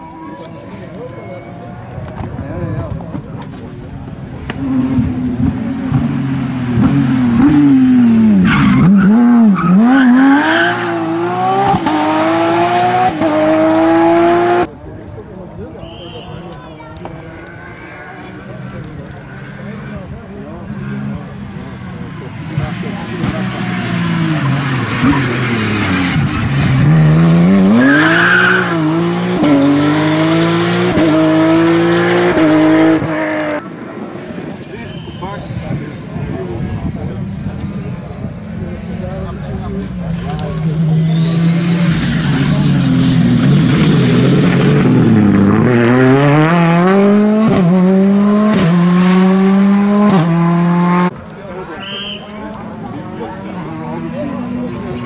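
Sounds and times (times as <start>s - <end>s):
rally car engine accelerating: 4.4s - 14.7s, 18.3s - 33.7s, 38.5s - 51.3s.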